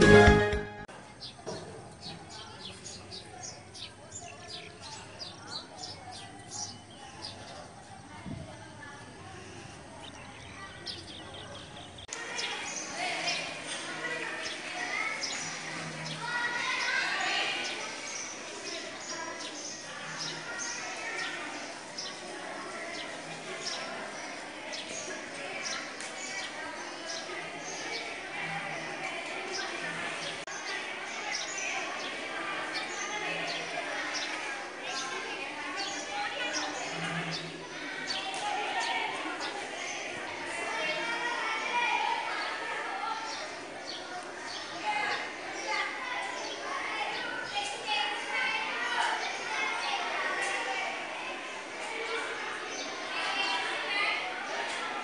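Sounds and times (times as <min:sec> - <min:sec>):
people talking and calling: 0:00.0 - 0:55.0.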